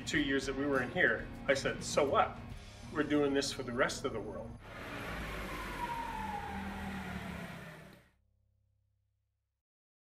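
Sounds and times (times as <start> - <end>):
forklift running with whine: 4.6 - 8.1.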